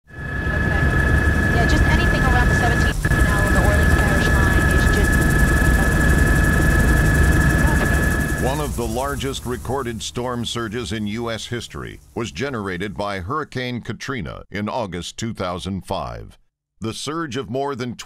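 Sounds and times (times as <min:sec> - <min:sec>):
helicopter rotor and engine rumble: 0:00.0 - 0:12.3
turbine whine: 0:00.0 - 0:13.0
faint voices: 0:00.5 - 0:06.7, 0:07.3 - 0:12.6.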